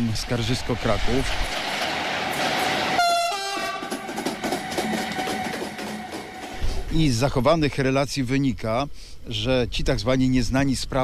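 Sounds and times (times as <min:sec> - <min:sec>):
train passing: 0:00.0 - 0:07.6
train horn: 0:02.9 - 0:06.4.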